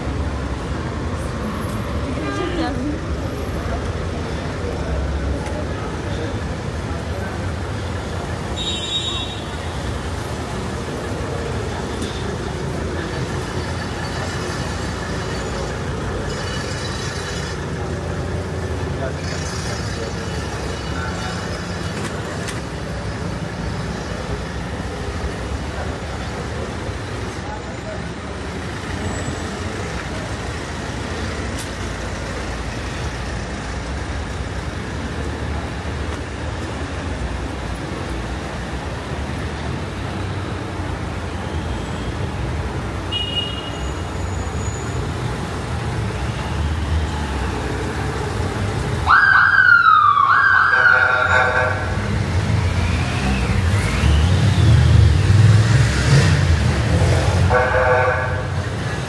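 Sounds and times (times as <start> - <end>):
street traffic: 0.0 - 59.0
vehicle siren wailing: 49.0 - 52.0.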